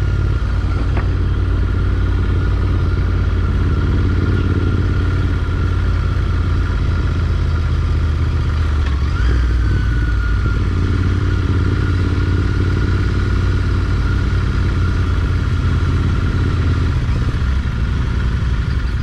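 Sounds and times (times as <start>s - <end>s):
motorcycle engine at low revs: 0.0s - 19.0s.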